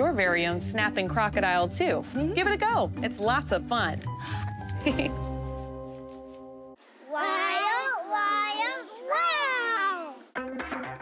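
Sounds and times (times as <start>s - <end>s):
music: 0.0s - 6.8s, 10.3s - 11.0s
child calling out: 7.1s - 10.2s.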